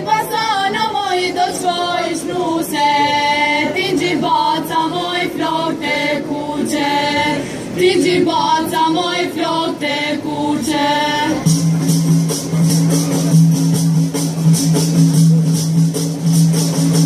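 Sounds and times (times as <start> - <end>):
group of voices singing: 0.0 - 11.6.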